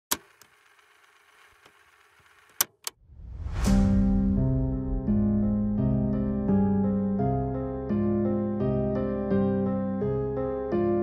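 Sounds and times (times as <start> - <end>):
rising whoosh: 3.0 - 7.2
keyboard chords and bass music: 3.4 - 11.0.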